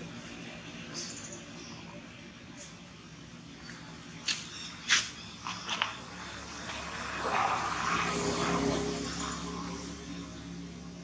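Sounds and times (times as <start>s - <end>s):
distant engine drone: 0.0s - 11.0s.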